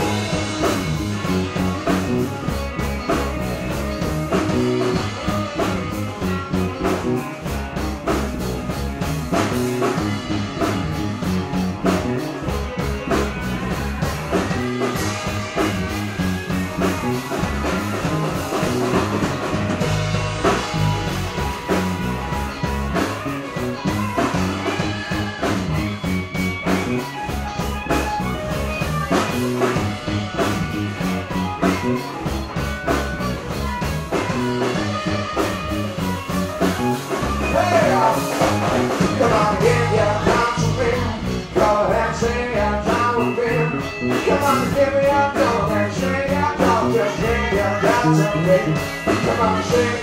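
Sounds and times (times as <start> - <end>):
drum kit beat: 0.0 - 50.0
guitar: 0.0 - 50.0
live rock band: 0.0 - 50.0.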